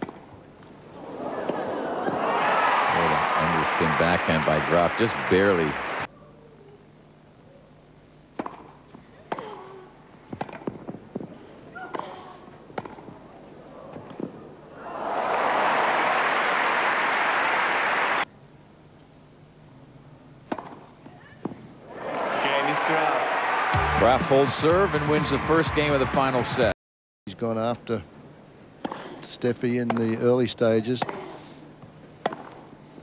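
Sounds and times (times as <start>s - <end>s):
tennis ball bouncing: 0.0s - 0.7s, 8.3s - 9.6s, 10.3s - 13.2s, 20.4s - 21.6s, 31.0s - 31.4s, 32.2s - 32.7s
crowd applause: 1.0s - 6.1s, 14.8s - 18.2s, 21.9s - 26.7s
racket hitting tennis ball: 8.4s - 9.6s, 10.3s - 13.2s, 20.5s - 20.8s, 31.0s - 31.4s, 32.2s - 32.7s.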